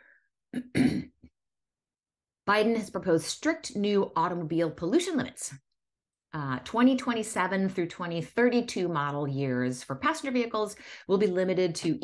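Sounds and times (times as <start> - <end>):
woman clearing her throat: 0.6 - 1.3.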